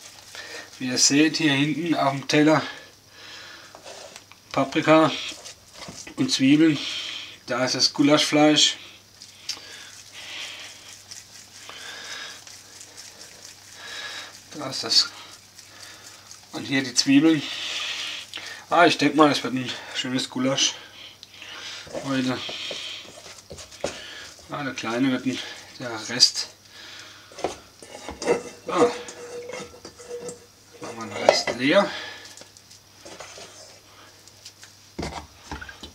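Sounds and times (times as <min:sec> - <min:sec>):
faint steady hum: 0:00.0 - 0:35.9
hands rolling dough: 0:09.1 - 0:18.4, 0:21.6 - 0:26.4.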